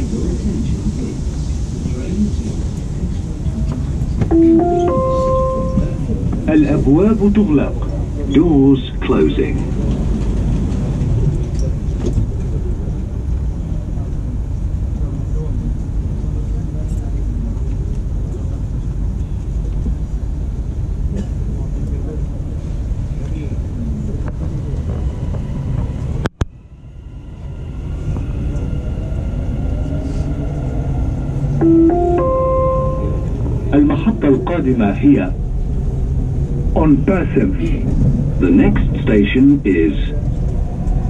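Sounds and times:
rising train whine: 0:00.0 - 0:21.1, 0:21.9 - 0:41.0
train rumbling inside carriage: 0:00.0 - 0:41.0.

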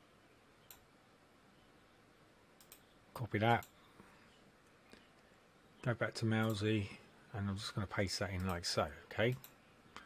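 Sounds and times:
faint room hiss: 0:00.0 - 0:10.0
computer mouse clicks: 0:02.6 - 0:02.9, 0:09.2 - 0:10.0.

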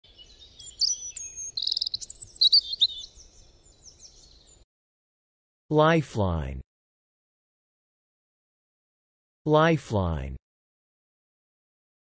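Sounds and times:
birds chirping and trilling: 0:00.0 - 0:04.6.

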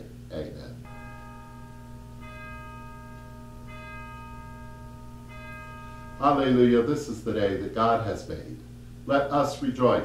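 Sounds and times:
bell chimes ringing: 0:00.8 - 0:08.5.

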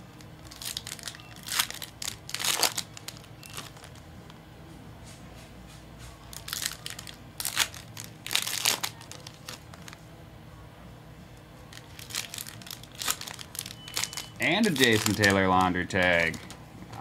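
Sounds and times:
foil wrappers crinkling: 0:00.2 - 0:04.1, 0:06.3 - 0:10.0, 0:11.7 - 0:16.6.

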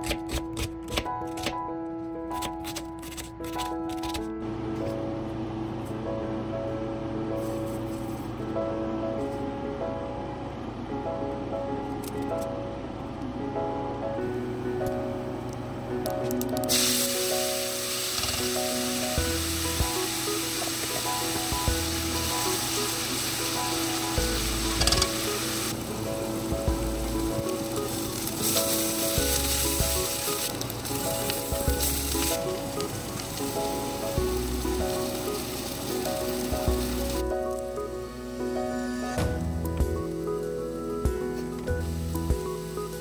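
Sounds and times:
soft background music: 0:00.0 - 0:43.0
onions sizzling in hot oil: 0:16.7 - 0:37.3.

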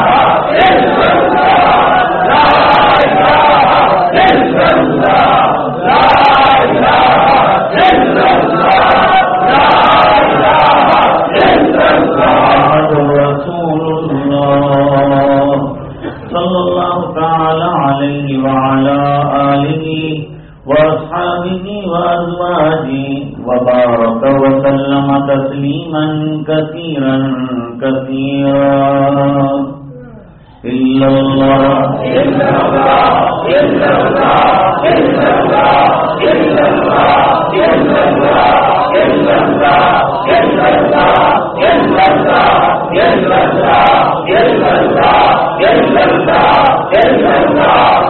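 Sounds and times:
man chanting verses: 0:00.0 - 0:48.0.

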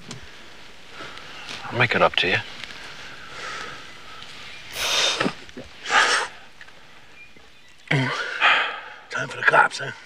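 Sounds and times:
man breathing through nose: 0:02.8 - 0:06.4, 0:08.4 - 0:09.1
loud sharp sniff: 0:04.7 - 0:05.3.

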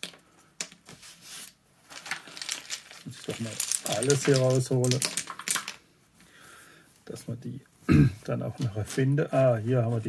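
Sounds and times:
game tokens clattering onto table: 0:01.9 - 0:05.8.

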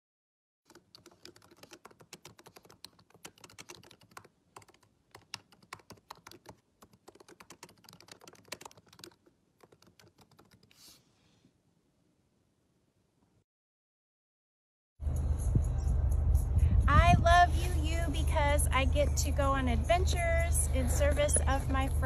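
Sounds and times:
laptop keyboard typing: 0:00.7 - 0:10.8.

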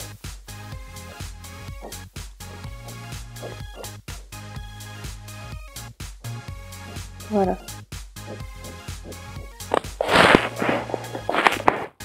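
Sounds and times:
faint background music: 0:06.5 - 0:12.0
plastic tub and spray can handling: 0:09.7 - 0:12.0.

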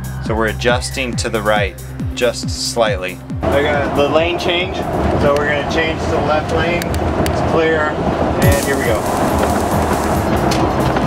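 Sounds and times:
background music: 0:00.0 - 0:05.7, 0:08.4 - 0:11.0
motorhome engine and road noise: 0:00.0 - 0:11.0.

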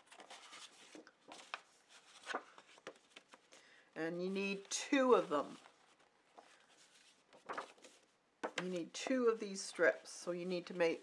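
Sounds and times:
paper rustling on tabletop: 0:00.0 - 0:03.5, 0:04.4 - 0:10.7.

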